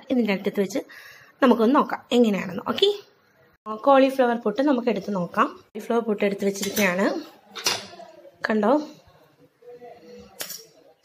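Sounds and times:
utensil clinking on ceramic plate: 0:10.4 - 0:10.8.

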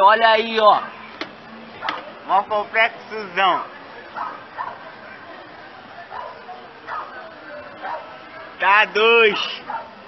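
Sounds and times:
dog barking: 0:01.8 - 0:02.0, 0:04.2 - 0:04.9, 0:06.1 - 0:07.2, 0:07.8 - 0:08.1, 0:09.3 - 0:10.0.

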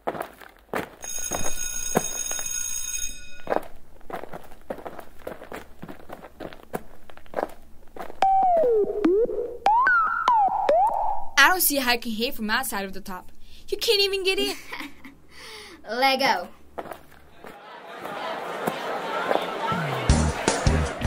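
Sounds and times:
footsteps: 0:00.0 - 0:08.8, 0:16.5 - 0:20.6
high alarm-like ringing: 0:01.0 - 0:03.6
pitched sound sliding down and up: 0:08.2 - 0:11.4.

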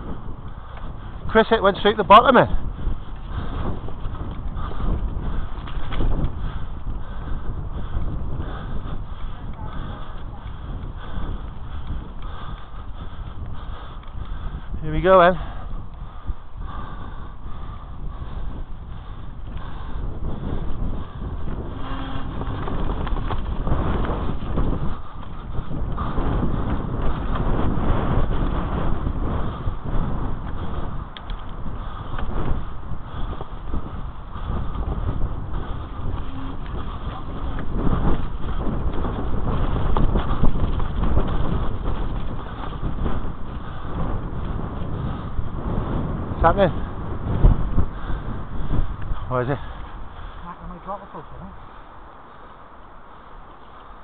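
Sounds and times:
bike knocking and rattling: 0:00.0 - 0:15.1, 0:16.0 - 0:50.4
bike tyres rumbling over dirt: 0:00.0 - 0:50.9.

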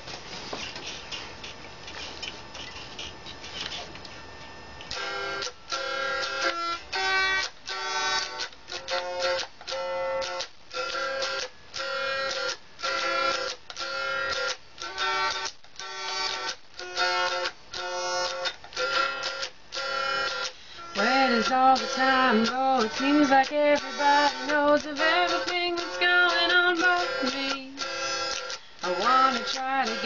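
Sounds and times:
steady background hum: 0:00.0 - 0:10.0
clicks and taps on guitar strings: 0:04.8 - 0:30.0.

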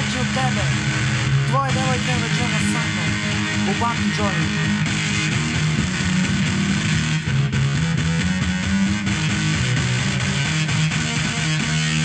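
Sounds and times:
people's voices: 0:00.0 - 0:00.8, 0:01.5 - 0:04.6.

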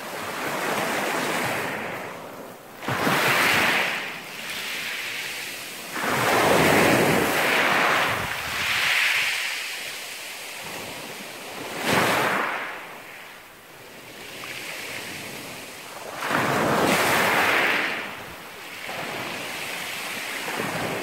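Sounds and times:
waves washing over pebbles: 0:02.8 - 0:13.1, 0:15.8 - 0:21.0.

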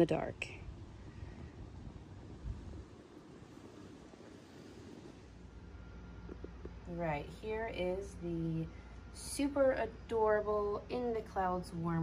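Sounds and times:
wind on microphone: 0:00.6 - 0:05.2.

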